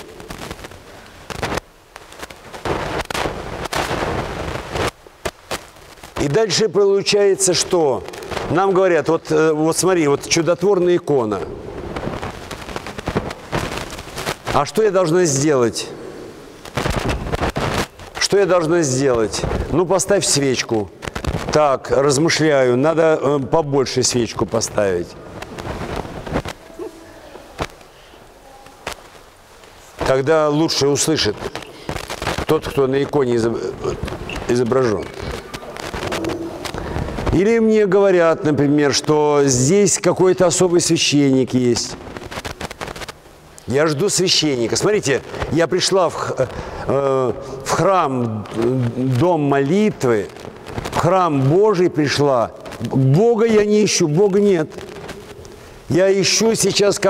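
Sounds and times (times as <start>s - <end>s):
crackling rustle on microphone: 0.0s - 57.0s
faint distant voices: 26.6s - 29.1s.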